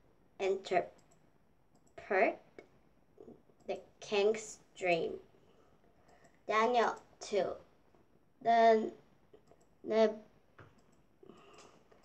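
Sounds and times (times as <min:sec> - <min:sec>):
girl reading aloud: 0:00.4 - 0:01.0, 0:02.0 - 0:02.6, 0:03.7 - 0:05.3, 0:06.4 - 0:07.8, 0:08.4 - 0:09.1, 0:09.8 - 0:10.4
faint clicks: 0:00.9 - 0:02.0.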